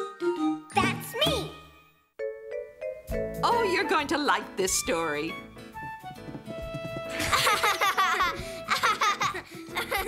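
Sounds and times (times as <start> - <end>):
cartoon theme song: 0.0 - 4.2.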